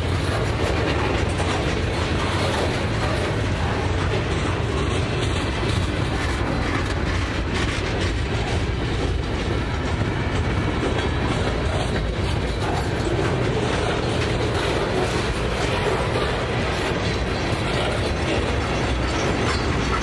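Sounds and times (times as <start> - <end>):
clatter over rail joints: 0.0 - 20.0
steel train wheels on rails: 0.0 - 20.0.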